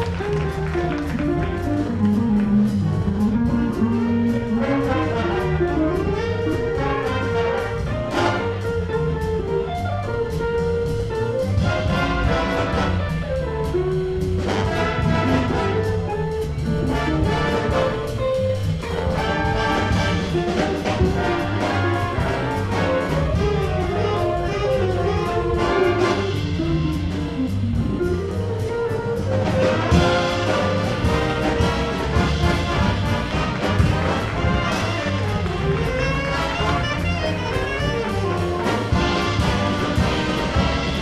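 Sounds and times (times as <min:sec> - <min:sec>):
jazz big band playing swing: 0:00.0 - 0:41.0.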